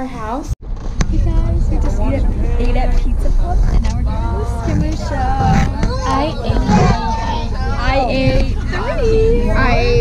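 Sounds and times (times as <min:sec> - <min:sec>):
bus engine and road rumble: 0:00.0 - 0:10.0
passengers' voices: 0:01.0 - 0:10.0.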